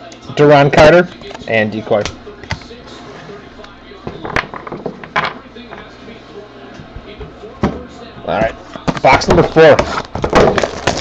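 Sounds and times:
cards and foil packs handled: 0:08.7 - 0:11.0.

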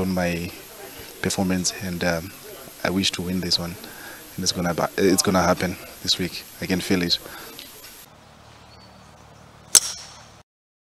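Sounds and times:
faint steady background noise: 0:00.0 - 0:10.4
golf club striking ball: 0:09.7 - 0:10.4.

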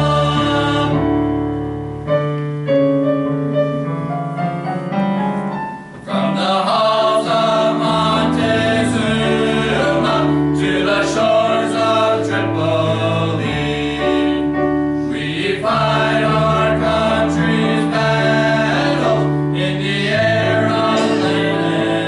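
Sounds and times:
male vocal ensemble singing: 0:00.0 - 0:01.1, 0:06.0 - 0:22.0
piano accompaniment: 0:00.0 - 0:22.0.

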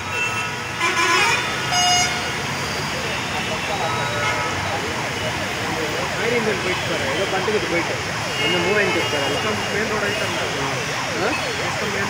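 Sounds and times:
vehicles moving through floodwater: 0:00.0 - 0:12.0
vehicle horns honking: 0:00.2 - 0:02.4, 0:08.2 - 0:10.6.

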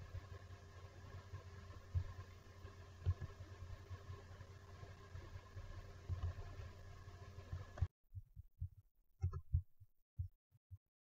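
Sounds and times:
faint background hum: 0:00.0 - 0:07.9.

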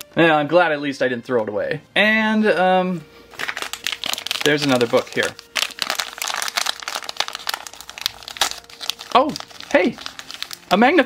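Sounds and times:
plastic wrapper crinkling: 0:03.3 - 0:11.0.

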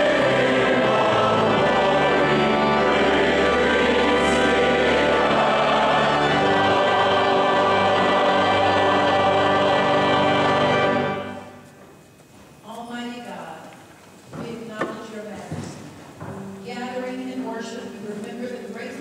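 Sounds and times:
congregation and choir singing hymn: 0:00.0 - 0:11.6.

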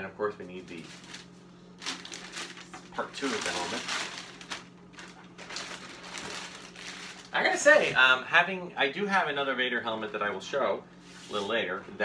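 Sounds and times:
plastic bag crinkling: 0:00.6 - 0:07.9.

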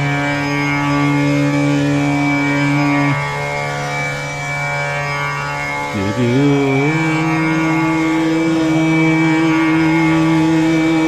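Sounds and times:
steady drone: 0:00.0 - 0:11.0
man chanting: 0:05.9 - 0:11.0.

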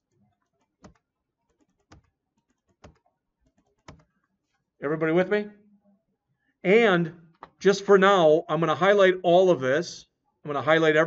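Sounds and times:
computer keyboard keystrokes: 0:00.0 - 0:04.1
man talking: 0:04.8 - 0:05.6, 0:06.6 - 0:11.0.

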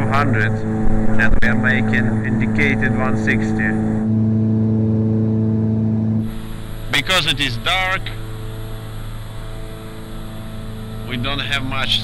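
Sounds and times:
aircraft engines humming: 0:00.0 - 0:12.0.

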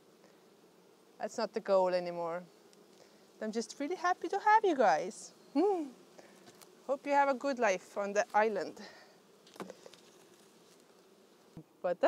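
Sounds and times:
honeybees buzzing: 0:00.0 - 0:12.0
mesh screen tapping on hive: 0:09.4 - 0:11.7.

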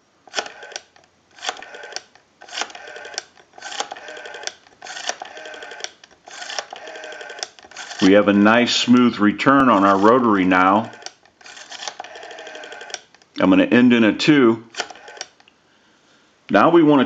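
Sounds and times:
rotary dial whirring return: 0:00.2 - 0:13.4, 0:14.3 - 0:15.5
rotary dial clicking: 0:00.3 - 0:13.4, 0:14.7 - 0:15.5.

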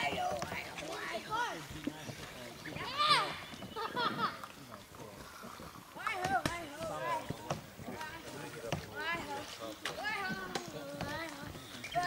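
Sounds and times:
people calling out and shouting: 0:02.6 - 0:03.7.

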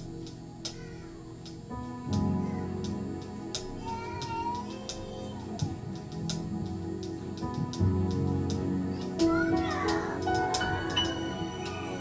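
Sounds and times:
gospel keyboard chords: 0:00.0 - 0:12.0
light cymbal taps: 0:00.0 - 0:12.0.

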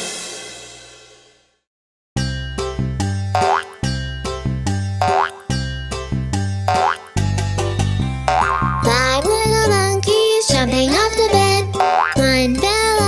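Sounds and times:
upbeat children's song instrumental: 0:02.2 - 0:13.0
springy boing effect: 0:03.4 - 0:03.9, 0:05.0 - 0:05.5, 0:06.7 - 0:07.1, 0:08.2 - 0:08.9, 0:11.8 - 0:12.2.

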